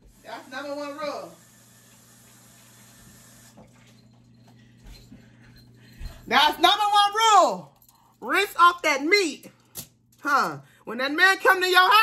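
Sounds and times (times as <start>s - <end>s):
distant tap running: 0.0s - 6.2s.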